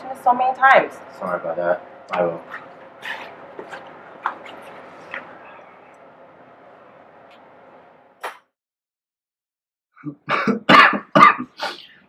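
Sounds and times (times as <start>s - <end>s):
man coughing: 10.0s - 11.9s.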